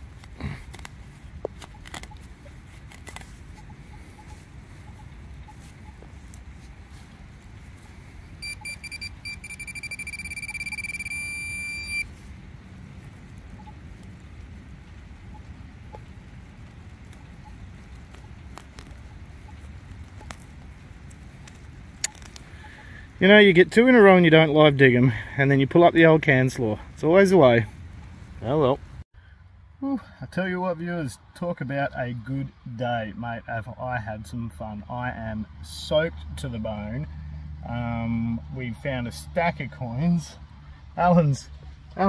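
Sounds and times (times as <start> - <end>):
metal detector beep: 8.4 - 12.1.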